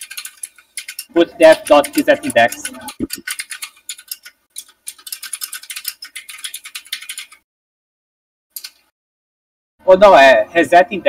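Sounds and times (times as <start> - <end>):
computer keyboard typing: 0.0 - 7.4, 8.6 - 8.8.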